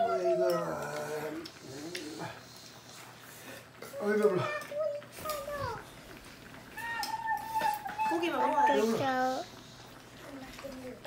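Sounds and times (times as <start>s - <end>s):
young child's voice: 4.0s - 5.9s, 6.8s - 9.5s.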